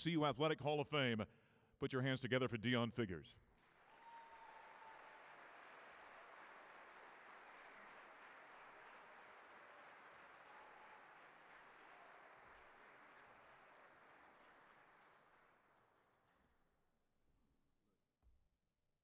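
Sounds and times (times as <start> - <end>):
audience applauding: 3.6 - 16.2.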